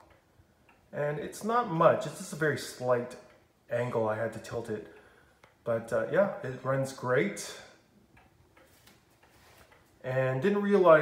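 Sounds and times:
clock pendulum ticking: 0.0 - 11.0.

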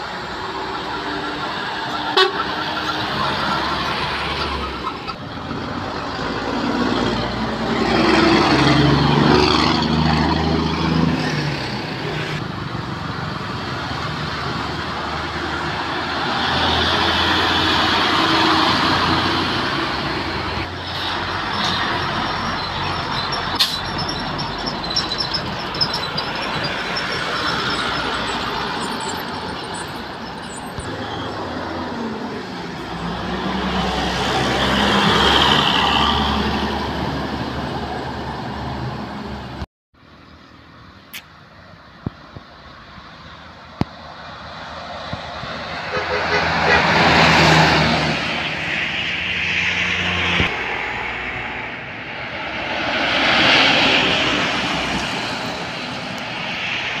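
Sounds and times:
heavy trucks passing: 0.0 - 41.0, 42.6 - 57.0.

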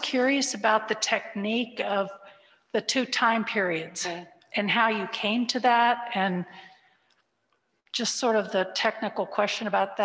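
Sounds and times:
person speaking: 2.8 - 6.5.

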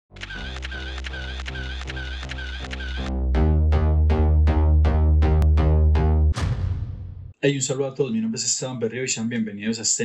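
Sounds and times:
camera shutter clicks: 0.2 - 3.1
intro music with bass line: 2.6 - 7.4.

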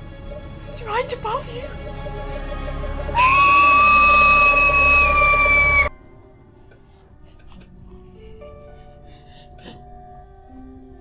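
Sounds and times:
soft music of held notes: 0.0 - 11.0
loud high scream: 3.2 - 5.9.

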